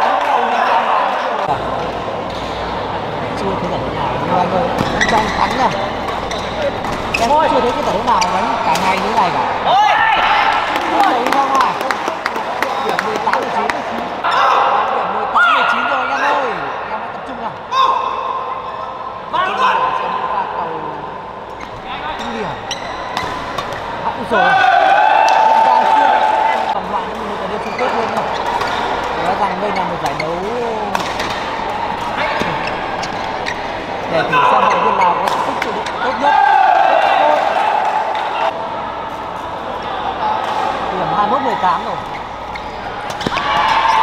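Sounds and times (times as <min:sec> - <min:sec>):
voices talking and shouting: 0:00.0 - 0:44.0.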